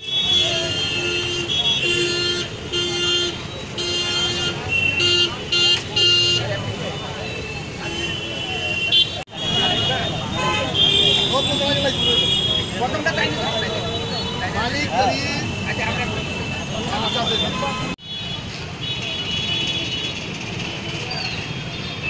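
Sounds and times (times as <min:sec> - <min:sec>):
vehicle horn tooting: 0:00.0 - 0:06.6
people's voices on street: 0:00.0 - 0:22.0.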